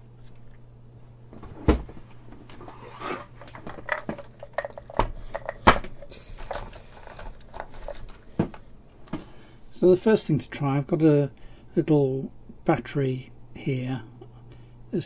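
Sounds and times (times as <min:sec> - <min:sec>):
faint low hum: 0:00.0 - 0:15.0
objects knocking and clattering: 0:03.4 - 0:08.6.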